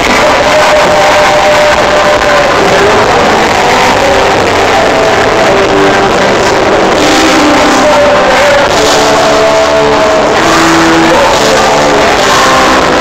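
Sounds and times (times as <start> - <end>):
live pop rock band playing: 0.0 - 13.0.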